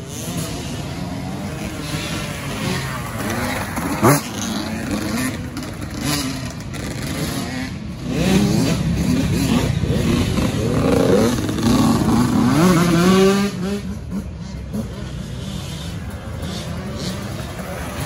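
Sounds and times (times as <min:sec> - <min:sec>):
dirt bike engine revving: 0:00.0 - 0:18.0.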